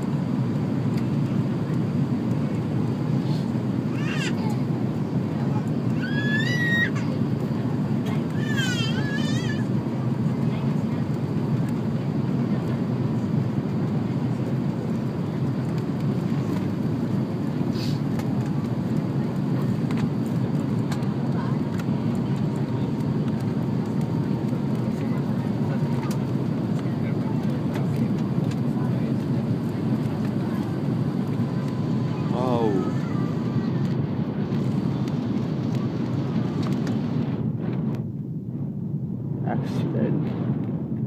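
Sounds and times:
airliner cabin roar: 0.0 - 41.0.

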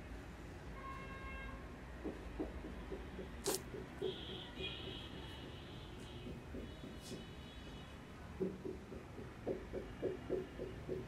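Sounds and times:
marker scratching on whiteboard: 3.4 - 5.1.

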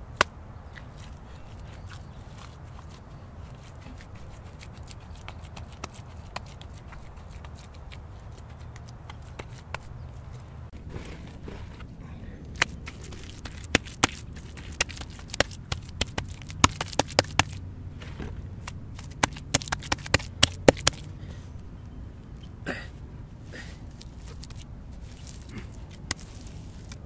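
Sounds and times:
bricks scraping on dirt: 10.7 - 11.9, 12.6 - 21.1, 24.0 - 27.0
bricks knocking and clicking: 12.6 - 18.3, 19.0 - 21.0.

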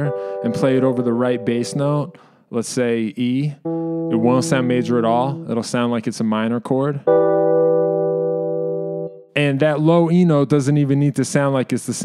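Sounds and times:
keyboard chord: 0.0 - 2.2, 3.6 - 6.0, 7.0 - 9.4.

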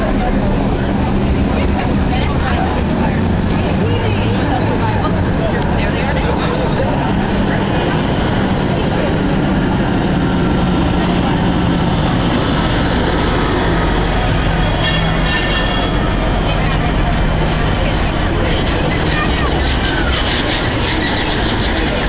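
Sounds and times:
babble of voices: 0.0 - 22.0
fire engine heavy engine drone: 0.0 - 22.0
vehicle engines running: 0.0 - 22.0.

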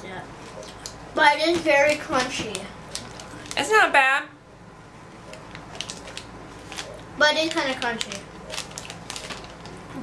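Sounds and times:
crunchy snack being chewed: 7.8 - 9.8.

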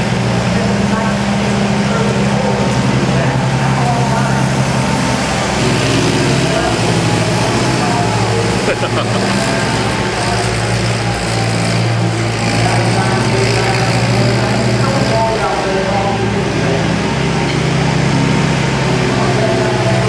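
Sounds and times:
indistinct voices: 0.0 - 20.0
tractor engine running: 0.0 - 20.0.

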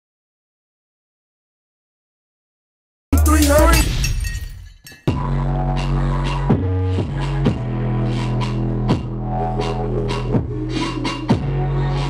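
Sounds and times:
crash: 3.2 - 5.2.

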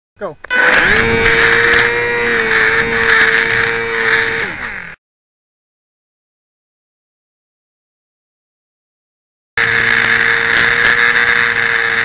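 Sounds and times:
clicks: 0.4 - 1.9, 2.5 - 3.7
small electric motor whine: 0.4 - 5.0, 9.6 - 12.0.

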